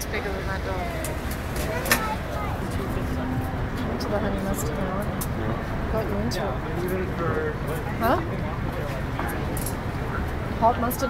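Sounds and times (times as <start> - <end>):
faint voices: 0.0 - 11.0
low traffic rumble: 0.0 - 11.0.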